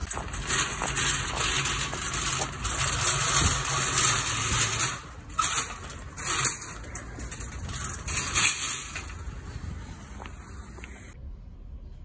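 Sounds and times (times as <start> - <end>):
metal trolleys clattering: 0.0 - 11.2
shopping trolley rattling on asphalt: 0.0 - 11.2.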